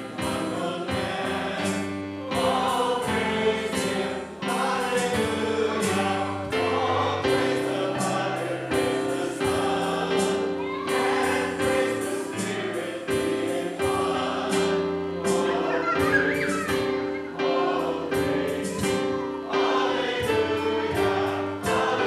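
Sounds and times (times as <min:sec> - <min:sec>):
choir singing slow hymn: 0:00.0 - 0:22.0.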